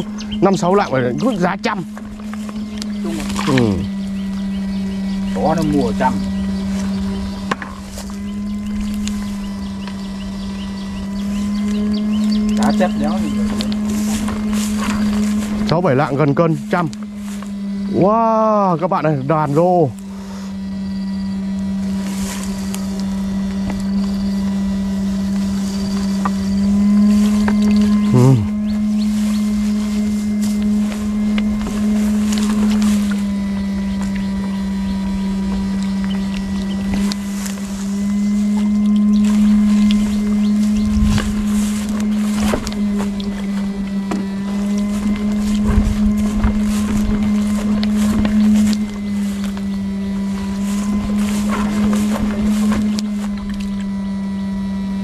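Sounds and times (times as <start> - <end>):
electric fish shocker buzzing: 0.0 - 55.0.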